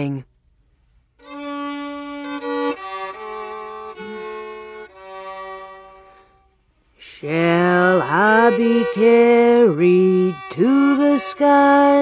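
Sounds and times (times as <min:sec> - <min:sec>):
solo fiddle playing a hymn: 0:01.2 - 0:12.0.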